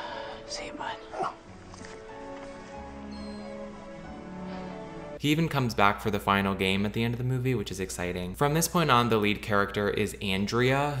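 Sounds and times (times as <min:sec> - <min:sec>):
soft film score: 0:00.0 - 0:10.6
dog whining: 0:03.0 - 0:03.7.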